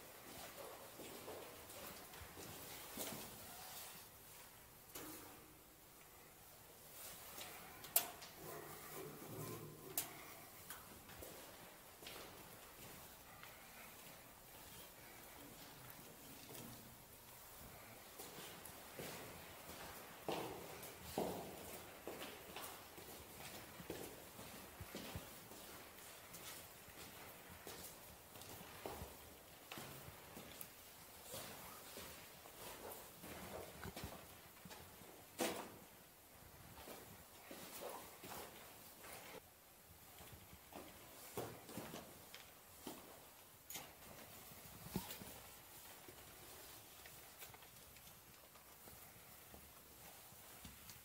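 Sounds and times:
scuffs and ticks of movement: 0.0s - 51.0s
footsteps on hard floor: 17.6s - 30.6s.

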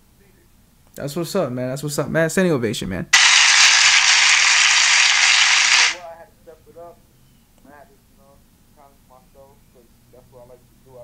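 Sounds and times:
burst of applause: 3.2s - 6.0s.

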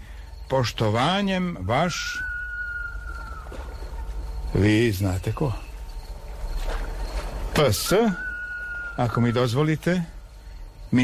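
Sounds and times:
steady low hum: 0.0s - 11.0s
high whistled note: 7.7s - 9.6s.

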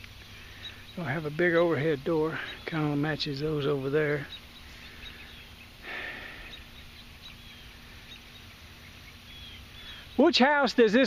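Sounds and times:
faint high bird chirps: 0.0s - 11.0s
low steady hum: 0.0s - 11.0s.

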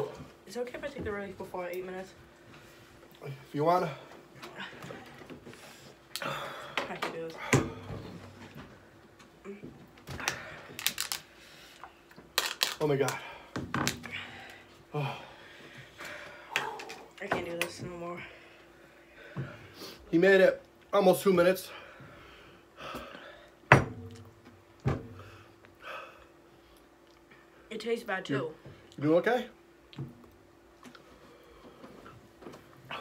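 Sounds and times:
plastic item clicking and crackling: 10.2s - 11.3s, 12.2s - 13.2s.

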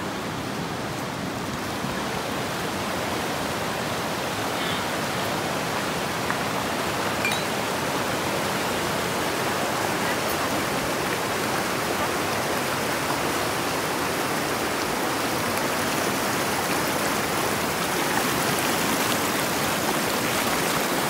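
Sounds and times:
river rushing over stones: 0.0s - 21.0s.

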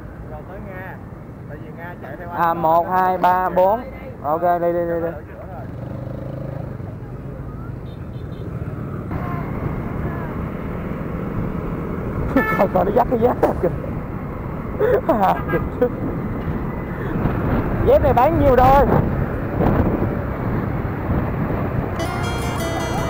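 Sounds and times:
passing traffic: 0.0s - 23.0s
tyre and wind noise: 15.4s - 23.0s
motorbike engine: 20.2s - 23.0s.

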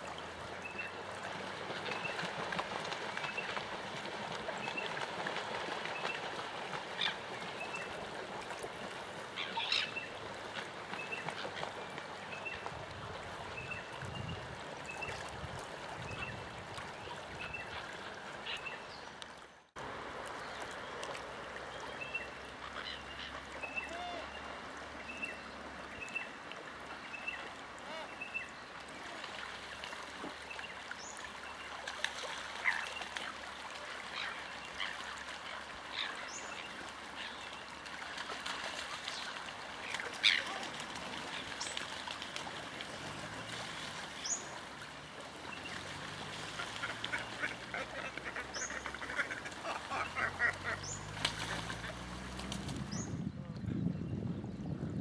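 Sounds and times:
waterbirds calling: 0.0s - 54.6s
water washing: 36.8s - 53.0s.

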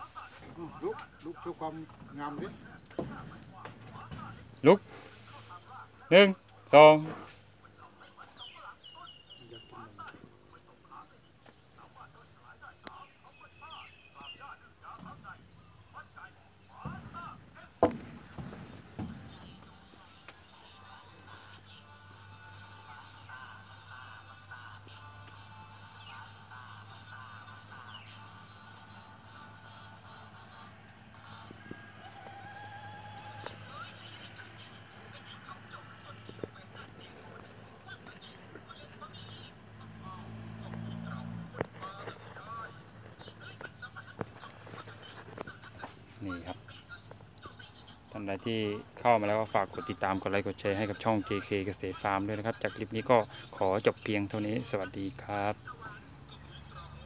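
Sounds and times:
faint music: 0.0s - 57.0s
high bird chirping: 7.8s - 57.0s.

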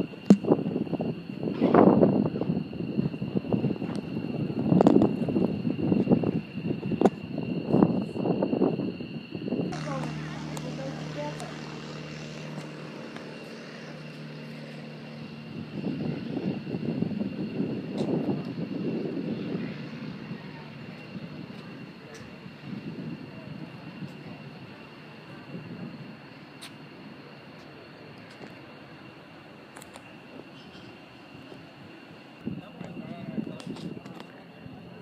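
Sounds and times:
small airplane engine: 0.0s - 35.0s.

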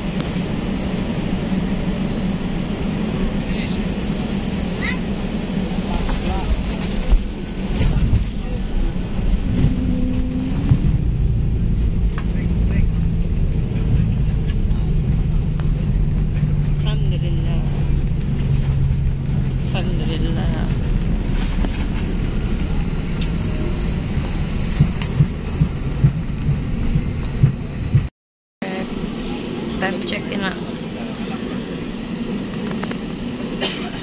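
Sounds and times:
airliner cabin rumble: 0.0s - 34.0s.

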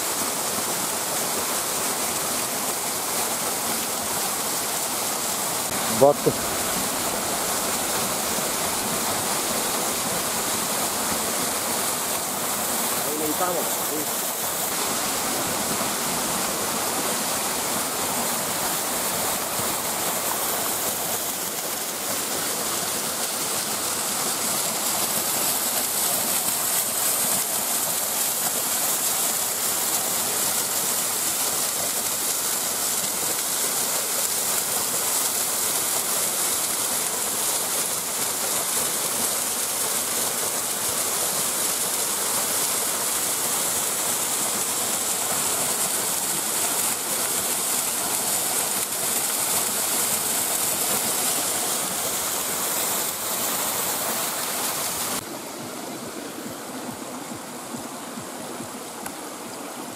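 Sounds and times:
stream rushing over rocks: 0.0s - 59.9s.

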